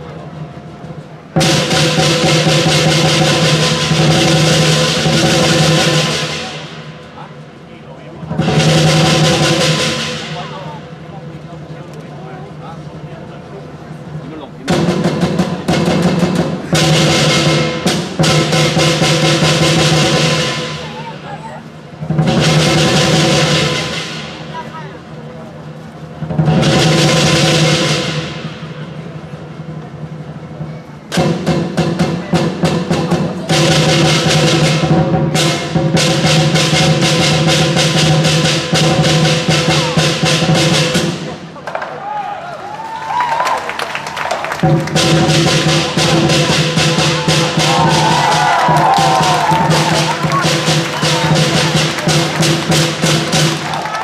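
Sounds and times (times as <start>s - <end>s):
cymbals and gong: 0.0s - 41.6s, 44.6s - 53.8s
lion drum beating: 0.6s - 11.8s, 14.0s - 25.2s, 26.1s - 42.0s, 44.2s - 54.0s.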